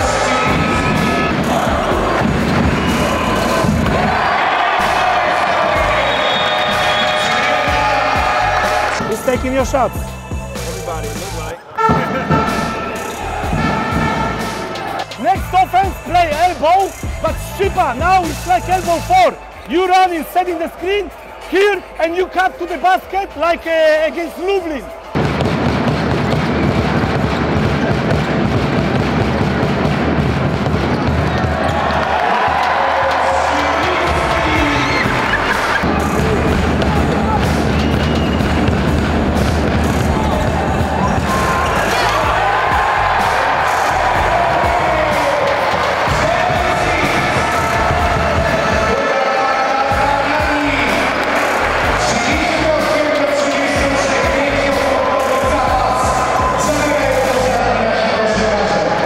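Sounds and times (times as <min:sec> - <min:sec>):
background music: 0:00.0 - 0:59.0
basketballs bouncing on court: 0:25.1 - 0:42.9.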